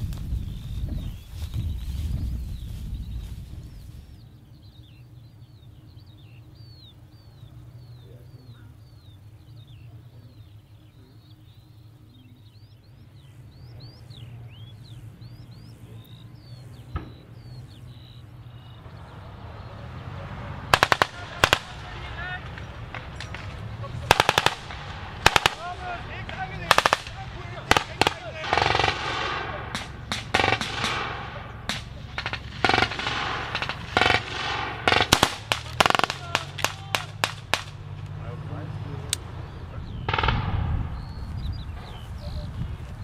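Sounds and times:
bird chirping: 0:00.0 - 0:43.0
low rumble: 0:00.0 - 0:43.0
distant gunshot: 0:16.9 - 0:17.6, 0:20.6 - 0:38.0, 0:40.0 - 0:41.2
loud sharp gunshots: 0:20.6 - 0:38.0, 0:40.0 - 0:41.2.

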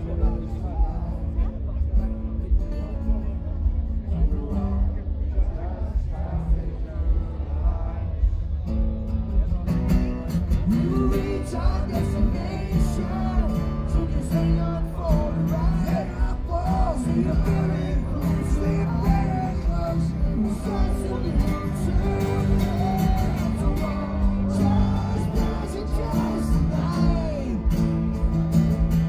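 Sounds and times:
acoustic guitars strummed: 0:00.0 - 0:29.0
man singing: 0:10.5 - 0:29.0.

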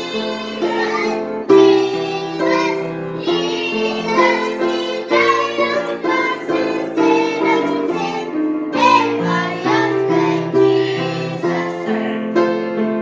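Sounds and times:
girls singing together: 0:00.0 - 0:13.0
grand piano: 0:00.0 - 0:13.0.

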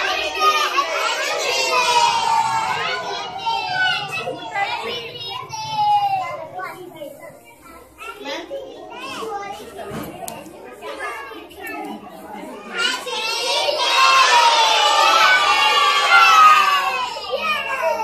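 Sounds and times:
young children chattering: 0:00.0 - 0:18.0.

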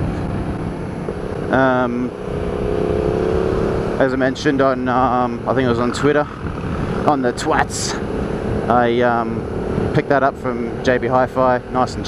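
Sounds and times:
wind rush on microphone: 0:00.0 - 0:04.0, 0:04.6 - 0:11.0
motorcycle engine running: 0:00.0 - 0:12.0.

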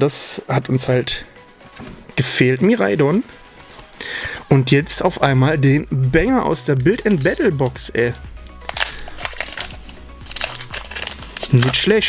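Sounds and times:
quiet background music: 0:00.0 - 0:12.0
plastic sleeve crinkling: 0:06.6 - 0:12.0.

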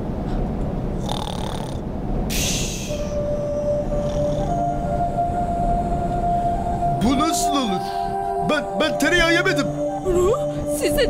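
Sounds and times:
cartoon bear snoring: 0:01.0 - 0:02.6, 0:04.0 - 0:04.6
held musical notes: 0:02.4 - 0:11.0.

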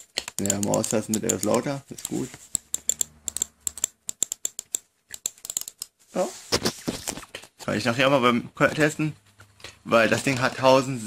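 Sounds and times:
mouse clicking rapidly: 0:00.0 - 0:05.9.

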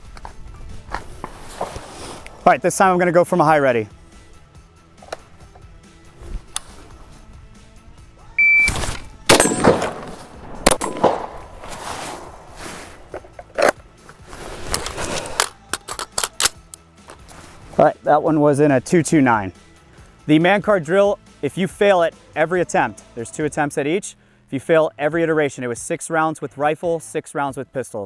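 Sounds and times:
shot timer beep: 0:08.4 - 0:08.8
rifle shot: 0:08.8 - 0:12.6
pistol shot: 0:09.3 - 0:11.6.

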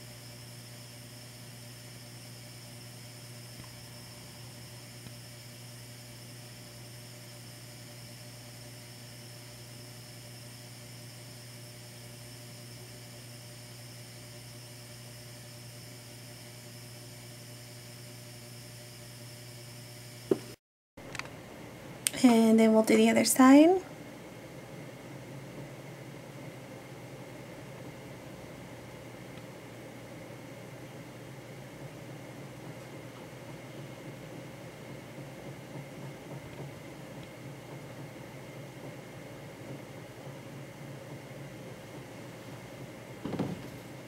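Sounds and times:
low electrical hum: 0:00.0 - 0:44.0.

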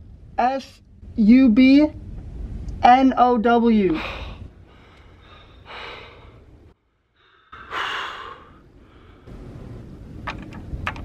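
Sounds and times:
breath: 0:04.0 - 0:06.5, 0:07.1 - 0:09.3
man sighing: 0:07.5 - 0:08.6.

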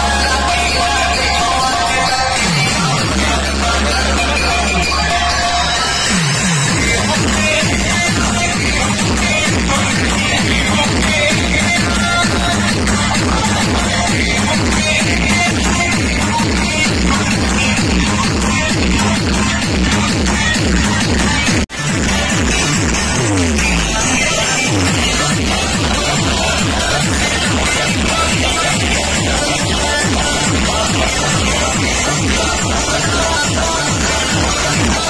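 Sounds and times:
electronic dance music: 0:00.0 - 0:35.0.

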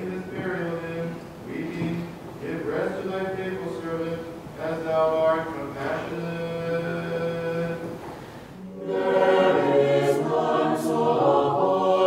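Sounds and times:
choir chanting a cappella: 0:08.6 - 0:12.0.

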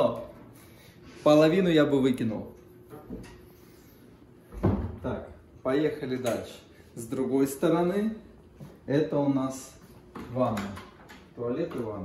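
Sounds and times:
wooden doors thumping shut: 0:04.5 - 0:05.2.

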